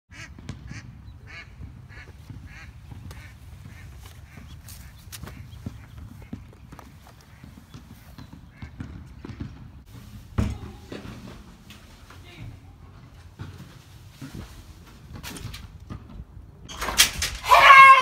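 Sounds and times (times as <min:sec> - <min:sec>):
bird calling: 0:00.1 - 0:09.4.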